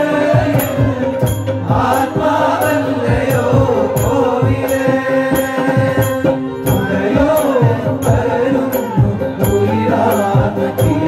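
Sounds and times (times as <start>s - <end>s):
men singing a chant: 0.0s - 11.0s
percussion beat: 0.0s - 11.0s.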